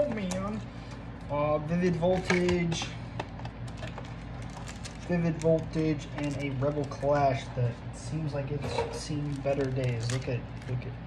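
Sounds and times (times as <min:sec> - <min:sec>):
foil packs crinkling: 0:00.0 - 0:07.8, 0:09.0 - 0:11.0
steady low hum: 0:00.0 - 0:11.0.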